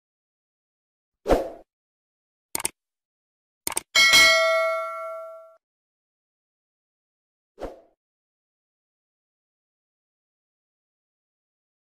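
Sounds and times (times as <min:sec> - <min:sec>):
mouse click: 0:02.6 - 0:02.8, 0:03.7 - 0:03.9
bright bell ding: 0:04.0 - 0:05.6.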